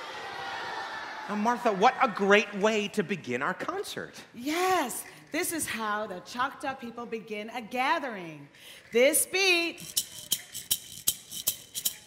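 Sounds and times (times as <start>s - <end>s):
hand rattle shaken: 8.8s - 12.0s.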